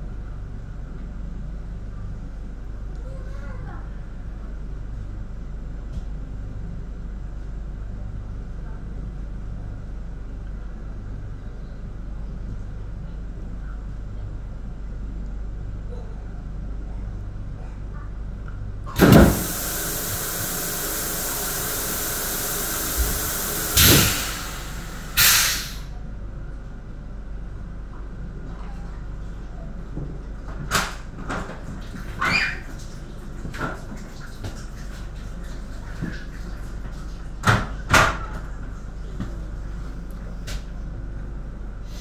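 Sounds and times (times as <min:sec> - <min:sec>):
electric train humming: 0:19.0 - 0:25.9
loud hiss: 0:19.0 - 0:25.9.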